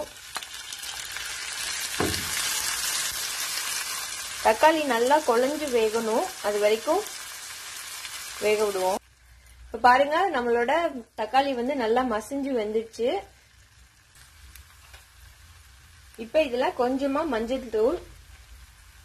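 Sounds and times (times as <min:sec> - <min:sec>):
vegetables sizzling in hot oil: 0:00.0 - 0:19.0
soft thump: 0:02.0 - 0:02.4.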